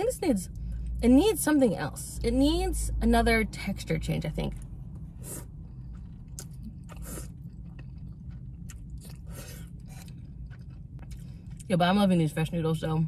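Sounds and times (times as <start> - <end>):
low steady hum: 0.0 - 13.0
person chewing noodles: 4.9 - 11.7.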